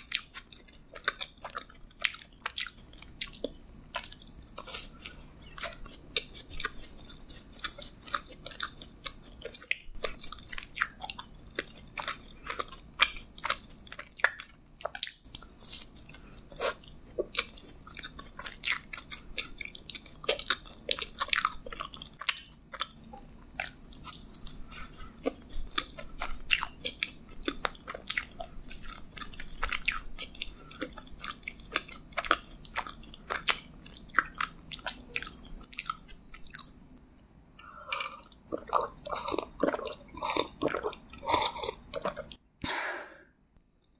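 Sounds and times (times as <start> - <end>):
chewing mouth sounds: 0.0 - 42.4.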